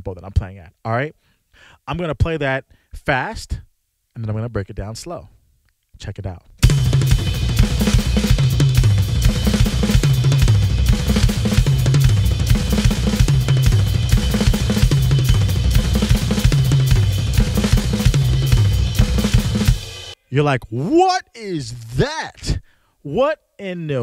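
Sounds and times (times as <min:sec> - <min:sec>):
fast drumming on toms and snare: 0:06.6 - 0:20.2.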